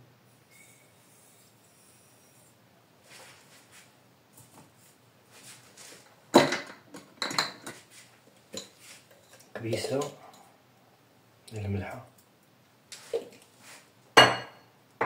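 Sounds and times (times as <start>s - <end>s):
kitchen utensils clinking: 8.5s - 10.4s.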